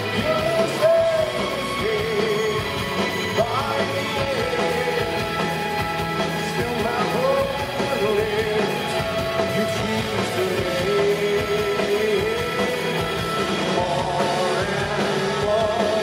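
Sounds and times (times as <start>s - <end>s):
bass guitar: 0.0s - 16.0s
drums: 0.0s - 16.0s
electric guitars: 0.0s - 16.0s
person singing: 0.0s - 16.0s.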